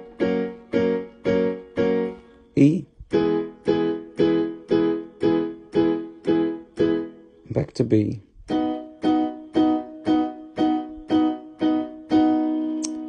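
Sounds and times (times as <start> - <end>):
piano chords on electronic keyboard: 0.0 - 13.0.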